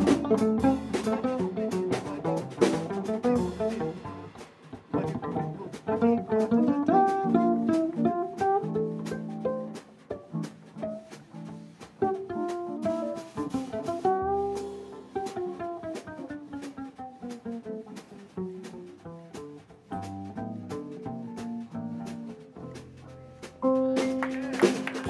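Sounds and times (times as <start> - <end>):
cello melody with sliding notes: 0.0 - 25.0
guitar accompaniment: 0.0 - 25.0.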